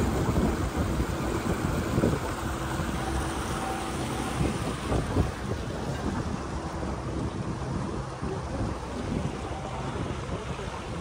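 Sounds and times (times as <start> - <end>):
boat rushing through water: 0.0 - 11.0
wind buffeting microphone: 0.0 - 11.0.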